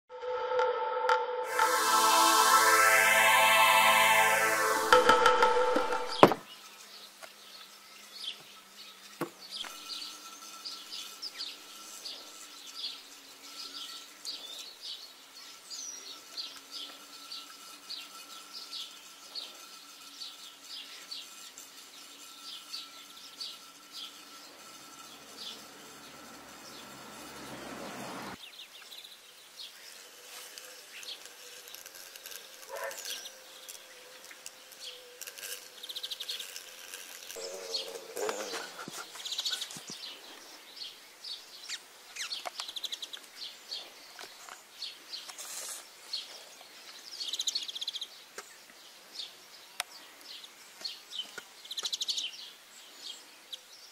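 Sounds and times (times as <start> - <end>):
rising rush: 0.1 - 6.4
small birds chirping: 37.2 - 53.9.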